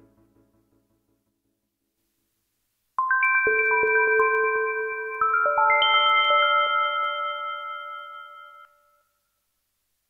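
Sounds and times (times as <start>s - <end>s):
bell-like synthesizer chord: 3.0s - 9.0s.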